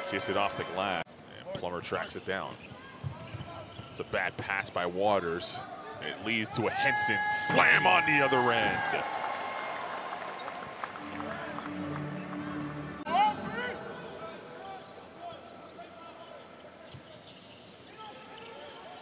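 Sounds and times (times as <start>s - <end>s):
arena noise: 0.0s - 19.0s
shoe squeal: 2.0s - 4.4s, 14.1s - 19.0s.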